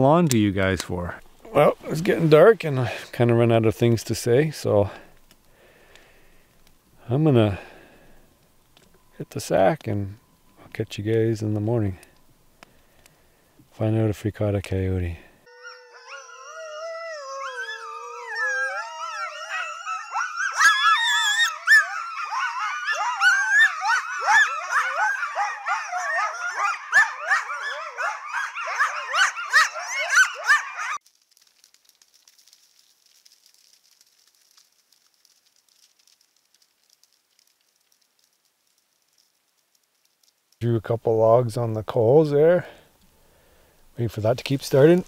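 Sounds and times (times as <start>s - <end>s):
coyotes howling and yipping: 15.4s - 31.0s.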